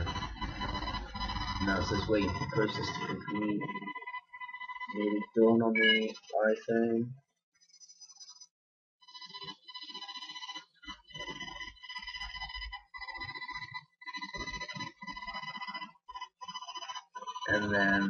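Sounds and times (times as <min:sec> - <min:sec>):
low muffled sound: 0:00.0 - 0:03.7
electronic ringing tone: 0:00.0 - 0:06.7, 0:09.0 - 0:18.0.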